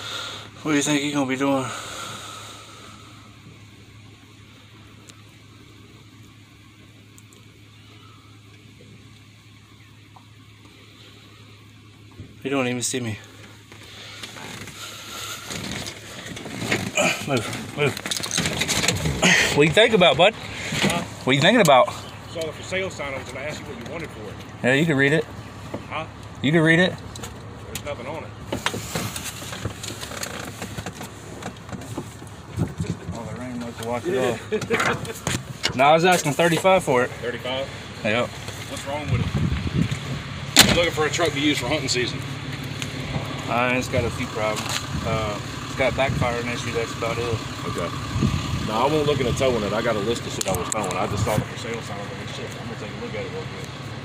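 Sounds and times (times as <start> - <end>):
vehicle engine idling: 0.0 - 54.0.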